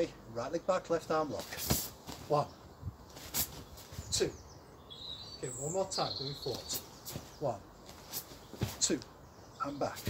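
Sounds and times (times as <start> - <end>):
small bird chirping: 2.4 - 10.0.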